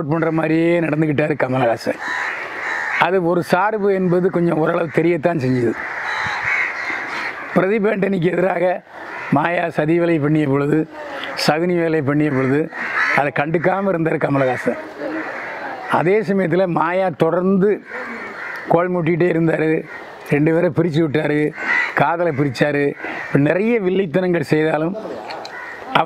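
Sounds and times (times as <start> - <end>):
man speaking: 0.0 - 2.0, 3.0 - 5.8, 7.6 - 15.3, 15.9 - 18.1, 18.7 - 25.3
crow cawing: 1.6 - 20.4, 21.2 - 24.0, 25.0 - 26.0
man's drawn-out voice: 7.6 - 15.2.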